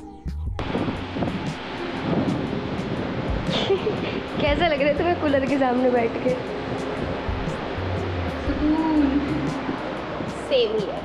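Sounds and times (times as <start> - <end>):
air cooler fan running: 0.6 - 11.0.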